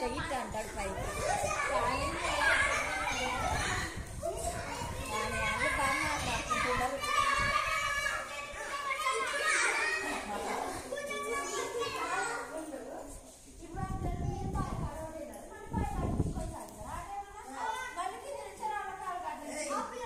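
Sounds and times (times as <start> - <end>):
children shouting and laughing: 0.0 - 12.7, 17.4 - 20.0.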